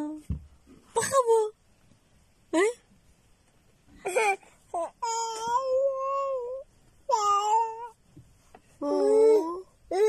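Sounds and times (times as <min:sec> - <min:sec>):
toddler wordless calls: 0:04.8 - 0:08.0.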